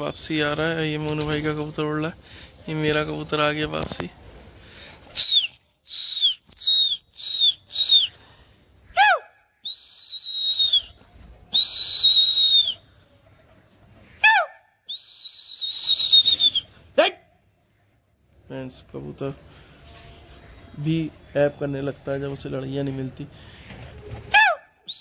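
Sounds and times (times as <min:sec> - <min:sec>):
person whistling loudly: 0:05.2 - 0:08.2, 0:09.0 - 0:12.8, 0:14.3 - 0:16.7, 0:24.4 - 0:25.0.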